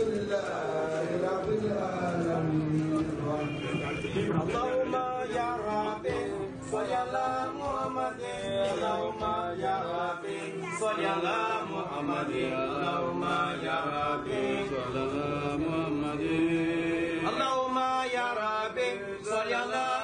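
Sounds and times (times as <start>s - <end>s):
men chanting together: 0.0s - 20.0s.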